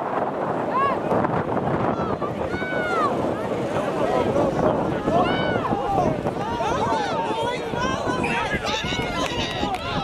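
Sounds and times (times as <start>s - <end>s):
people shouting and calling: 1.9s - 10.0s.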